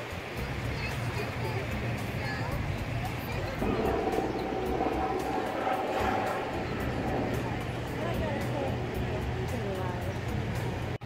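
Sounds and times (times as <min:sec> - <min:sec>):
indistinct people talking: 0:00.0 - 0:11.0
steady low hum: 0:03.5 - 0:09.8.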